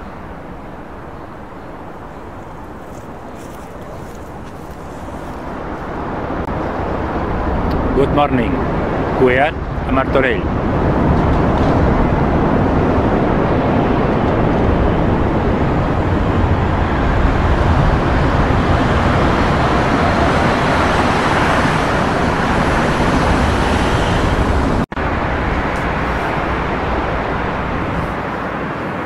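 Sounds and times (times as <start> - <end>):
dense road traffic noise: 0.0 - 29.0.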